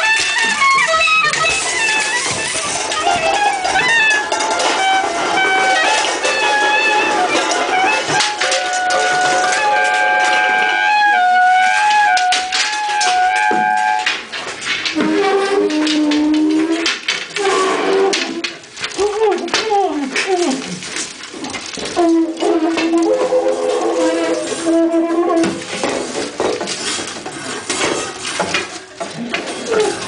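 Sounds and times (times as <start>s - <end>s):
improvised horn and brass playing: 0.0s - 14.2s, 22.0s - 25.6s
clatter and knocks: 0.0s - 30.0s.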